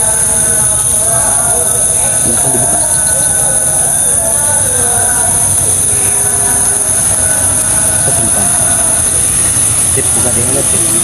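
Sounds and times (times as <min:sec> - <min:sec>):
night insects buzzing: 0:00.0 - 0:11.0.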